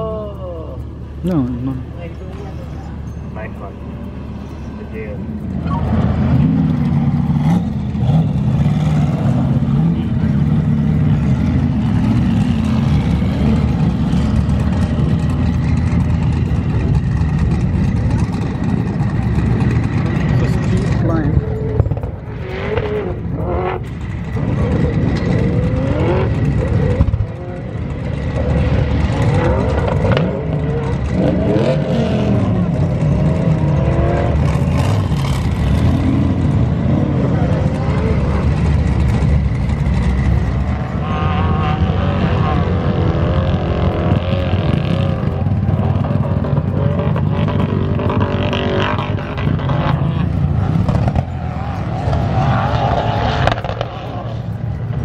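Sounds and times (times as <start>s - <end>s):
engines revving: 0.0s - 55.0s
off-road engines droning: 0.0s - 55.0s.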